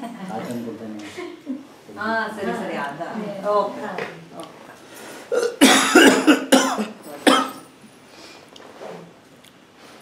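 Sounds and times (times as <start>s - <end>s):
man coughing: 5.3s - 7.6s.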